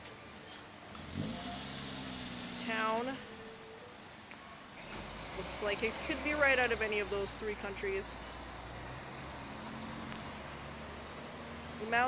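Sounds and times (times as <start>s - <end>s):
street noise: 0.0s - 12.0s
truck engine pulling away: 0.0s - 12.0s.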